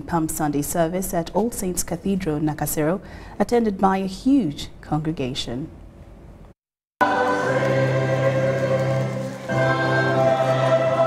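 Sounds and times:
choir singing a hymn: 0:07.0 - 0:11.0.

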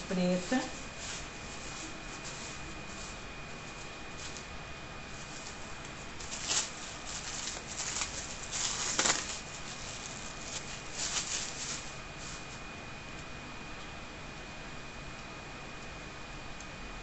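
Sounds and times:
plastic bag crinkling: 0:05.1 - 0:12.5.

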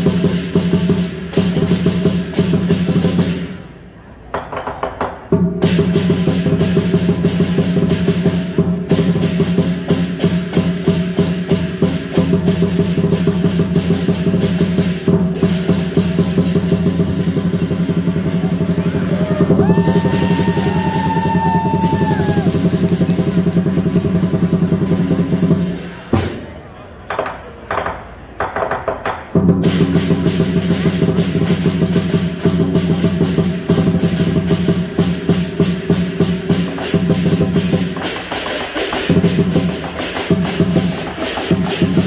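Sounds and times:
fast drum beating: 0:00.0 - 0:03.4, 0:05.4 - 0:25.9, 0:29.4 - 0:42.0
cymbals clashing: 0:00.0 - 0:03.7, 0:05.4 - 0:26.5, 0:29.6 - 0:42.0.

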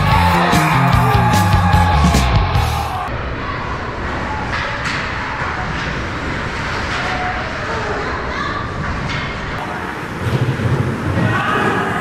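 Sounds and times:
ice rink hockey noise: 0:03.0 - 0:12.0.

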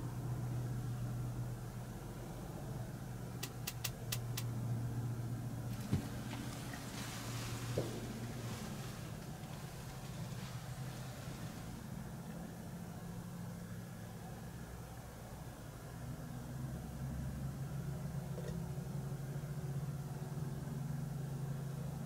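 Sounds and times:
low mechanical hum: 0:00.0 - 0:22.0
sharp clicks: 0:03.4 - 0:04.5
soft rustling: 0:05.7 - 0:12.2.

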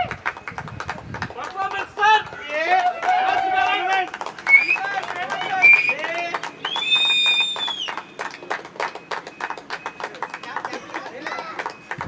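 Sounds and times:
small group clapping: 0:00.0 - 0:12.0
lower whistle: 0:04.5 - 0:04.8, 0:06.6 - 0:08.0
high steady whistle: 0:04.5 - 0:04.9, 0:05.6 - 0:06.0, 0:06.6 - 0:08.1.

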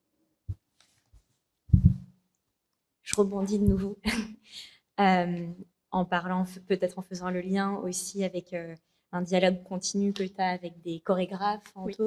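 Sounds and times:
microphone handling thumps: 0:01.7 - 0:02.1.

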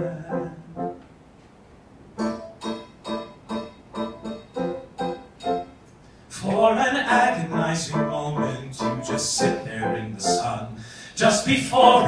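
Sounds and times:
piano playing repeated chords: 0:00.0 - 0:01.0, 0:02.2 - 0:12.0.

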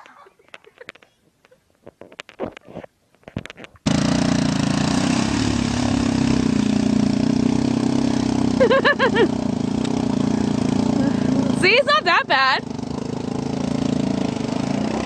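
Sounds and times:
water splashing: 0:03.9 - 0:10.8
quad bike engine running: 0:03.9 - 0:15.0.

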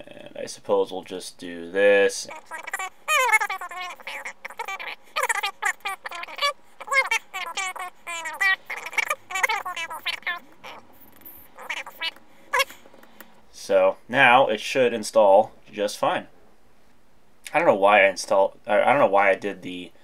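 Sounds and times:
sped up high-pitched chatter: 0:02.3 - 0:12.7.

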